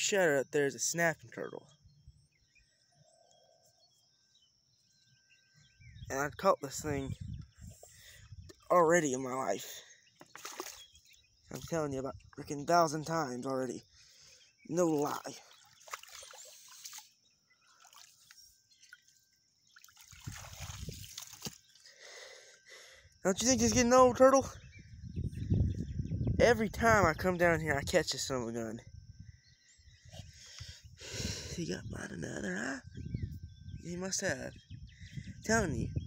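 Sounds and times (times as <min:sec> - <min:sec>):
faint bird chirps: 0:00.0 - 0:36.0
water trickling and dripping: 0:14.9 - 0:21.8.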